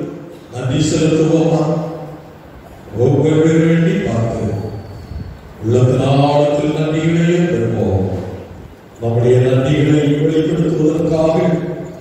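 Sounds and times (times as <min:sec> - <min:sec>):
man chanting through a microphone: 0:00.0 - 0:02.1, 0:02.9 - 0:04.9, 0:05.6 - 0:12.0.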